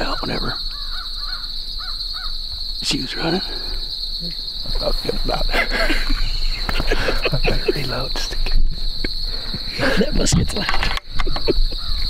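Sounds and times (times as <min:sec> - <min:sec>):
crow cawing: 0:00.0 - 0:02.6, 0:11.2 - 0:12.0
crickets chirping: 0:00.0 - 0:12.0.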